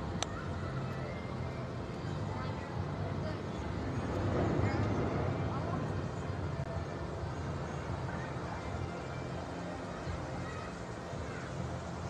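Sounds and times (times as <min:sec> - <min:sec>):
children's voices: 0:07.8 - 0:12.0.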